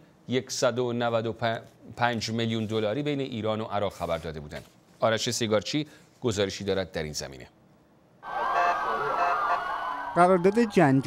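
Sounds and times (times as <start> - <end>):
vehicle sirens: 8.2 - 11.0.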